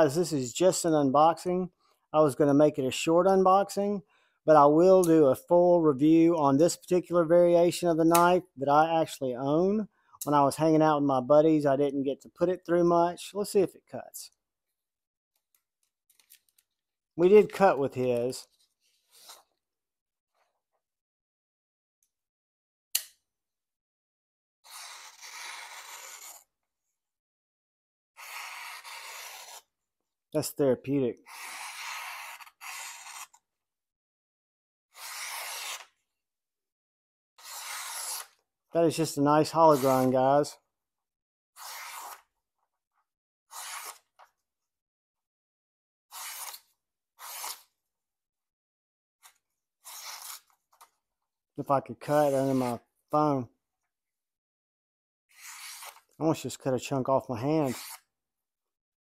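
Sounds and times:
folding knife clicking open: 23.0 - 23.2
knife slicing paper: 28.2 - 29.7, 35.0 - 36.0, 37.4 - 38.4, 39.5 - 40.1, 41.6 - 42.3, 43.5 - 44.1, 46.1 - 47.7, 49.3 - 50.5, 57.6 - 58.1
short scratches: 52.1 - 52.8.

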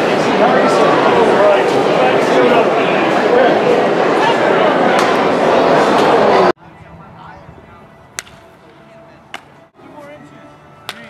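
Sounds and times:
loud ballpark crowd noise: 0.0 - 11.0
bat cracking ball: 8.1 - 8.5.

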